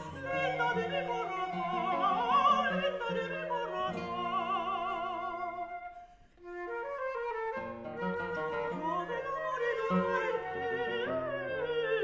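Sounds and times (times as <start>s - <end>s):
woman singing: 0.0s - 5.9s, 8.7s - 12.0s
flute melody: 0.0s - 12.0s
plucked classical guitar: 0.0s - 12.0s.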